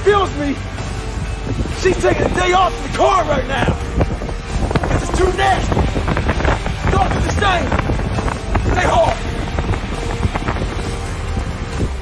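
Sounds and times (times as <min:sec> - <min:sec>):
wind buffeting microphone: 0:01.0 - 0:12.0.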